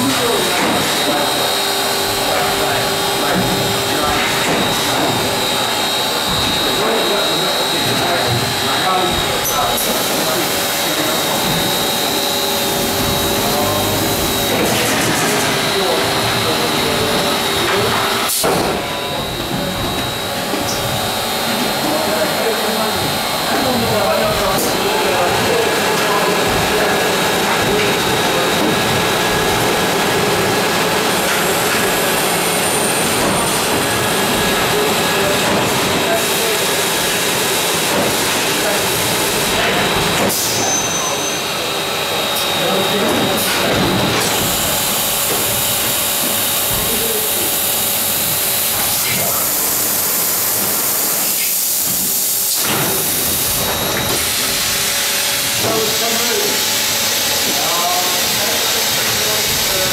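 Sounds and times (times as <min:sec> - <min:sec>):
machine air rush and hiss: 0:00.0 - 0:59.9.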